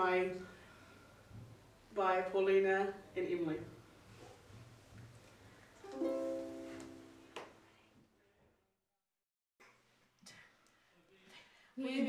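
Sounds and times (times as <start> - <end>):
ukulele chord strummed: 5.8 - 7.4.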